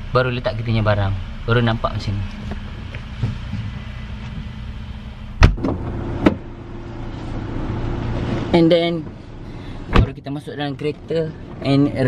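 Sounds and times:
steady low hum: 0.0s - 12.0s
car boot lid slamming: 5.4s - 6.5s, 9.9s - 10.2s.

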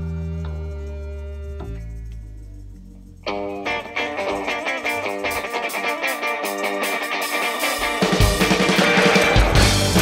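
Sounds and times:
electric guitar riff: 3.2s - 10.0s
live band music: 3.2s - 10.0s.

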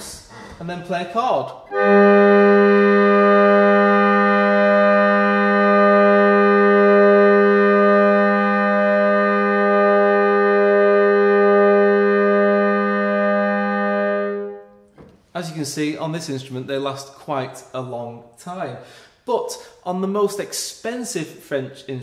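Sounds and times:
harmonium chord: 1.7s - 14.9s.

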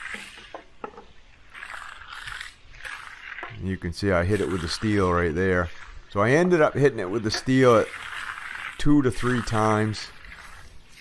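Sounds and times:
steel trowel scraping concrete: 0.0s - 0.7s, 1.3s - 11.0s.

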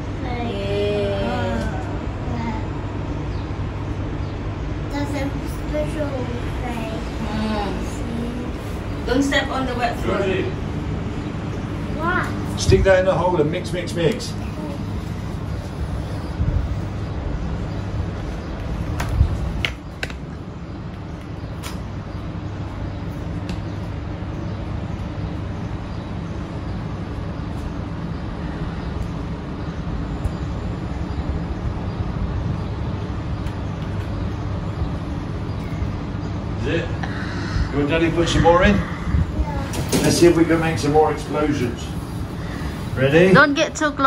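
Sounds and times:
low background hum and rumble: 0.0s - 44.0s.

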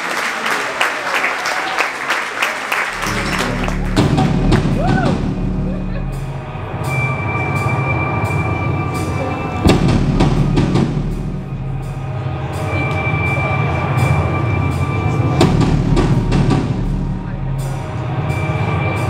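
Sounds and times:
heavy drum hit: 2.9s - 7.0s, 9.6s - 12.8s, 15.4s - 18.1s.

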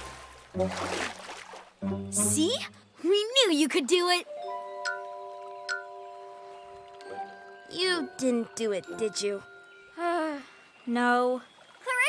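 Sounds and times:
low held musical tone: 1.9s - 12.0s.

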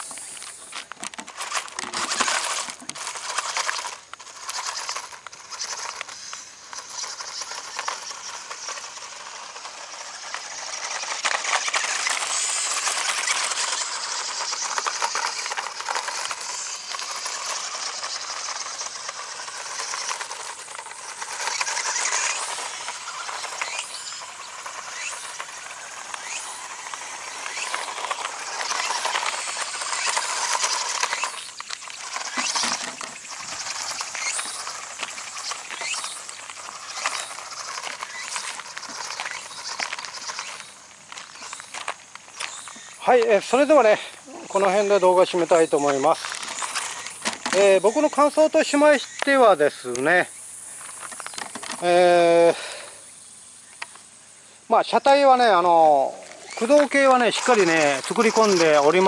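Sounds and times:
small electric motor whining: 0.0s - 59.0s
tyres crunching on gravel: 0.0s - 59.0s.

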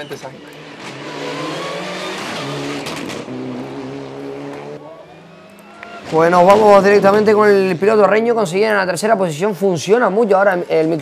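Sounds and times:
race car engine revving: 0.2s - 8.0s.

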